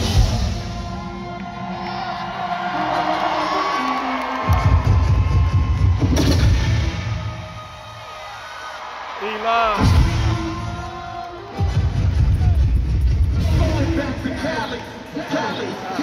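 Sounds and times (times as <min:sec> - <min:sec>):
live hip-hop band music: 0:00.0 - 0:07.2, 0:09.6 - 0:16.0
crowd cheering: 0:00.0 - 0:16.0.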